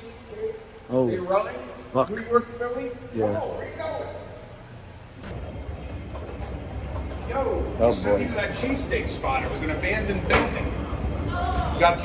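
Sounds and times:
escalator rumbling: 0:00.0 - 0:12.0.

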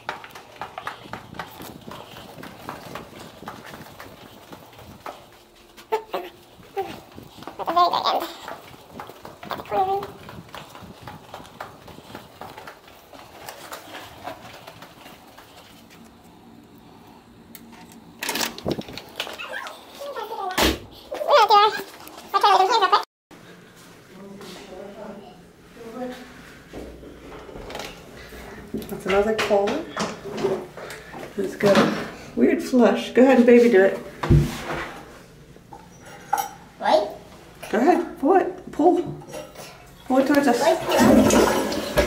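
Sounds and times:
soft footsteps on carpet: 0:00.0 - 0:16.4
door opening with clatter: 0:17.8 - 0:19.8.

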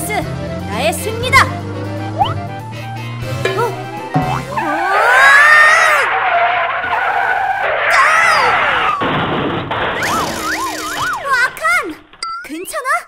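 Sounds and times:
whistling pitch slides: 0:02.2 - 0:02.4
car tyre screech: 0:04.4 - 0:09.0.

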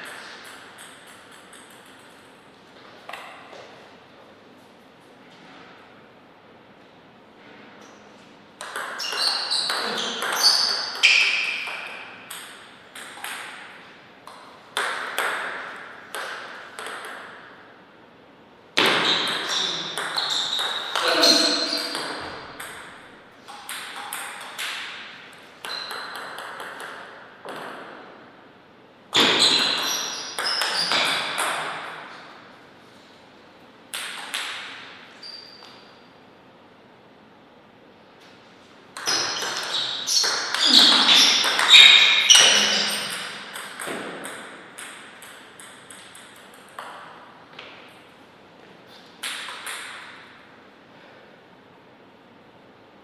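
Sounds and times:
table tennis ball clicking: 0:00.0 - 0:02.3.

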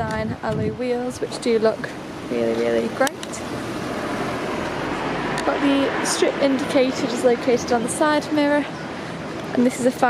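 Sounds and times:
road traffic rushing by: 0:00.0 - 0:10.0.

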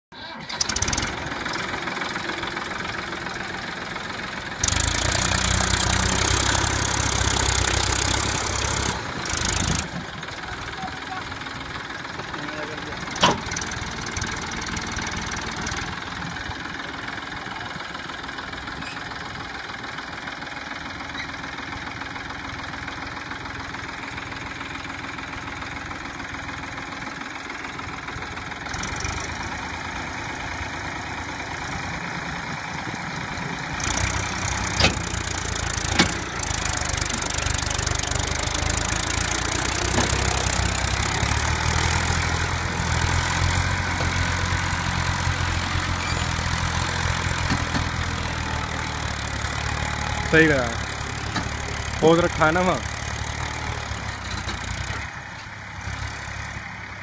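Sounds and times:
tractor diesel engine running: 0:00.2 - 0:57.0.

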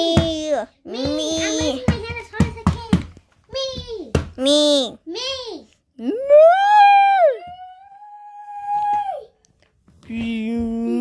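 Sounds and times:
person whining in falsetto: 0:06.0 - 0:09.3.

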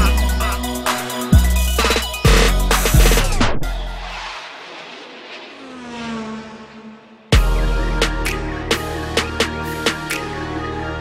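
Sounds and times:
hip-hop instrumental: 0:00.0 - 0:04.6, 0:07.3 - 0:11.0
hissing car-like sound effect: 0:03.9 - 0:07.4.

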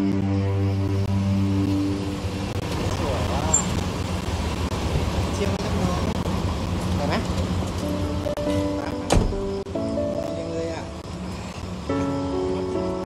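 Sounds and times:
soundtrack music: 0:00.0 - 0:03.9, 0:07.8 - 0:13.0
car engine running: 0:00.0 - 0:13.0
street noise: 0:00.0 - 0:13.0.

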